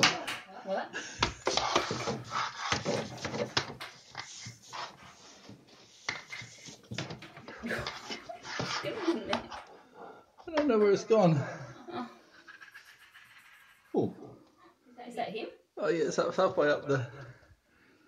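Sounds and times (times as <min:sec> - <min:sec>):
possum scrabbling and knocking: 0:01.2 - 0:09.7
animal vocal noise: 0:12.2 - 0:14.4.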